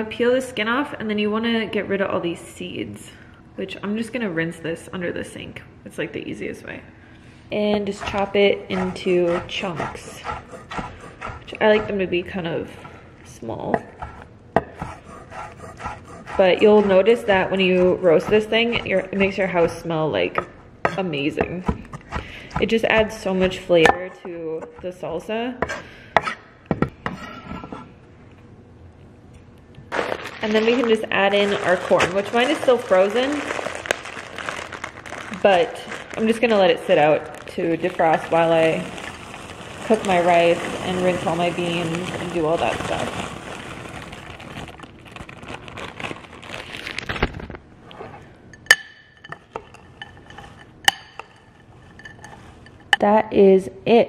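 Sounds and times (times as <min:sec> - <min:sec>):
spoon stirring moist vegetables: 0:07.9 - 0:12.0, 0:13.8 - 0:19.8, 0:48.6 - 0:53.0
food rustling in a glass bowl: 0:08.0 - 0:12.0, 0:30.0 - 0:48.0, 0:49.4 - 0:53.0.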